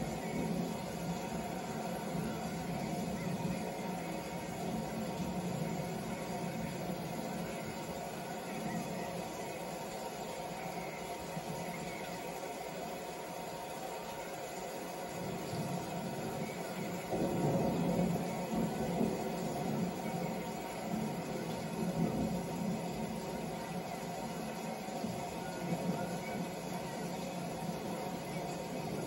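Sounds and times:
steady hiss: 0:00.0 - 0:29.0.

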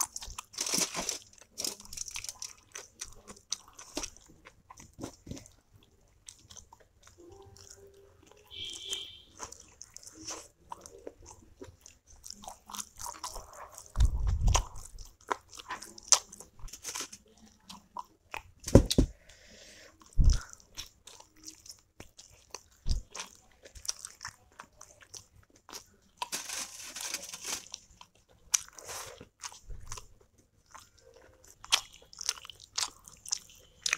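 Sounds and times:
chewing and wet mouth sounds: 0:00.0 - 0:18.6, 0:19.2 - 0:33.9.

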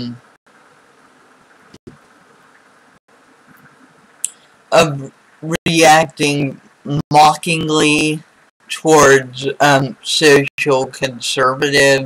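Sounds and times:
room tone and microphone hiss: 0:00.0 - 0:12.0.

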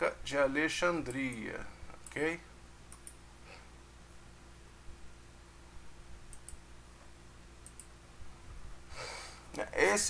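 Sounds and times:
low steady hum: 0:00.0 - 0:10.0
computer mouse clicks: 0:02.9 - 0:03.2, 0:06.3 - 0:06.6, 0:07.6 - 0:07.9.

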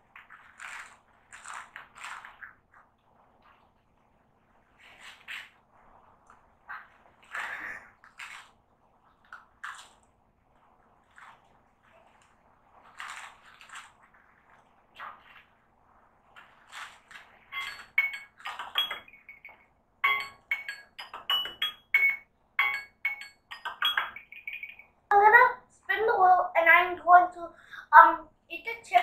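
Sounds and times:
child chewing crunchy snack: 0:00.1 - 0:02.8, 0:11.0 - 0:14.8.

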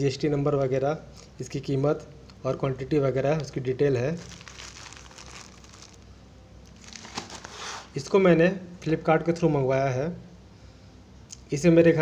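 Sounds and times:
plastic mailer crinkling: 0:04.2 - 0:07.9.

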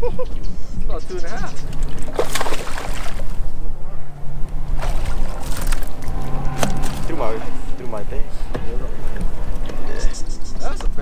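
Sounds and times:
wind rumble on microphone: 0:00.0 - 0:11.0
electric trolling motor humming: 0:01.6 - 0:09.9.

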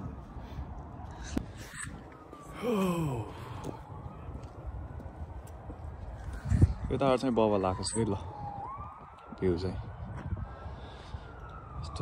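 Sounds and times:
man's wordless vocal sound: 0:02.5 - 0:03.7.

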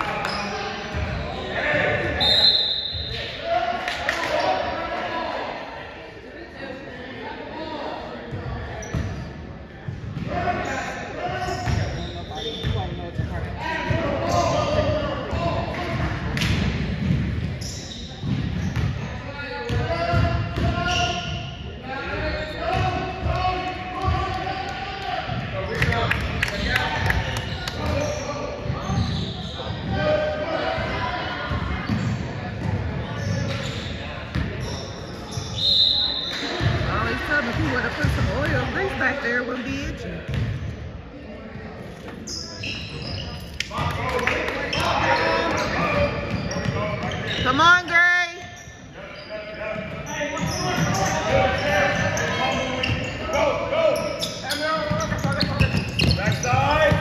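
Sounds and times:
voices echoing: 0:00.0 - 0:57.0.

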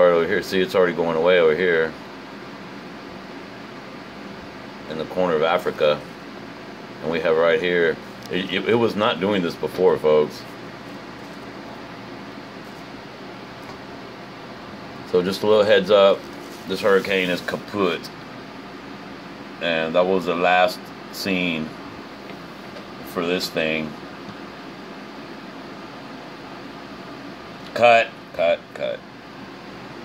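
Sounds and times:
room tone hiss: 0:00.0 - 0:30.0.

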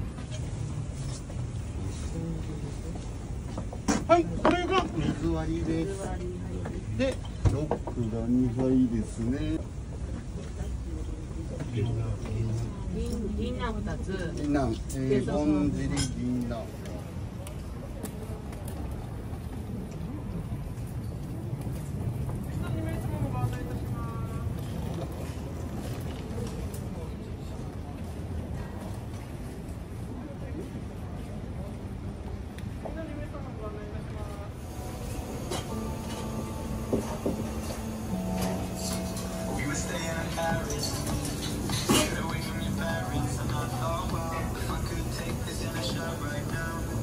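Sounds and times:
customers chattering: 0:00.0 - 0:47.0
low street rumble: 0:00.0 - 0:47.0.

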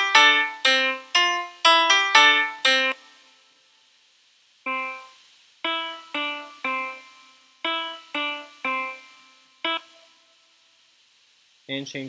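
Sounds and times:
synthesizer notes: 0:04.7 - 0:10.3.

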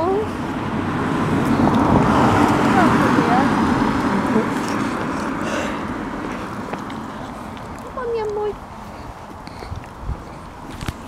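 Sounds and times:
car passing by: 0:00.0 - 0:07.6.

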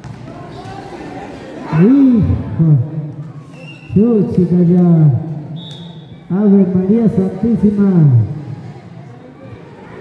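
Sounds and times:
basketball court background noise: 0:00.0 - 0:10.0.

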